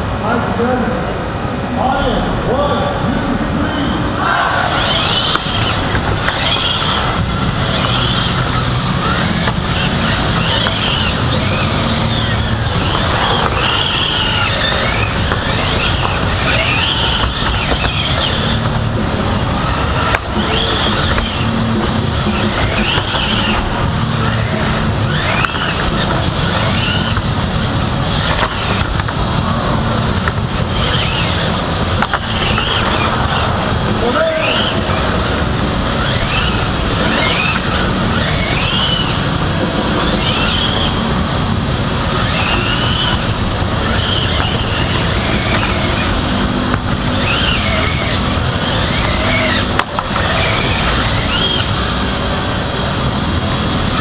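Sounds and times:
crowd chatter: 0.0s - 54.0s
electric motors whining: 0.0s - 54.0s
steady rumble: 0.0s - 54.0s.

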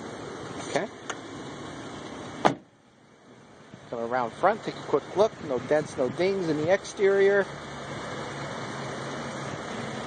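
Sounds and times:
car door slamming: 2.4s - 2.7s.

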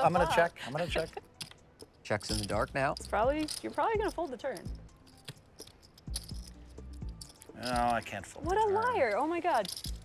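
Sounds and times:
soft background music: 0.0s - 10.0s
poker chips clicking: 0.1s - 10.0s.

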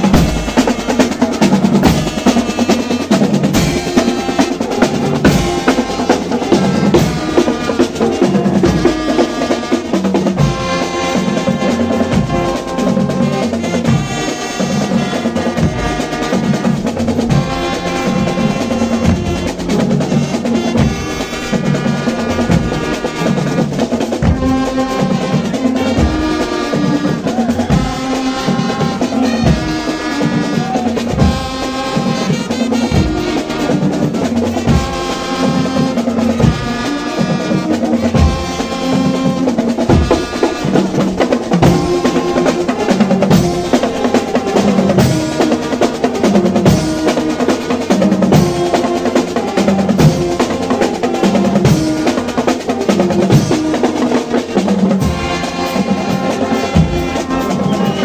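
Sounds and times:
brass instruments playing: 0.0s - 58.0s
snare drum rolls: 0.0s - 58.0s.

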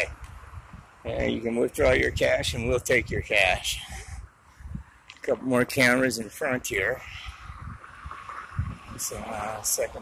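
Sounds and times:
outdoor background hiss: 0.0s - 10.0s
wind rumbling on microphone: 0.0s - 10.0s.

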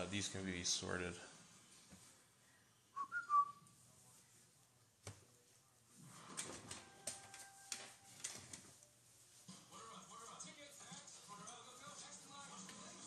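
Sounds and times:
whistle-like chirp: 3.0s - 3.6s.

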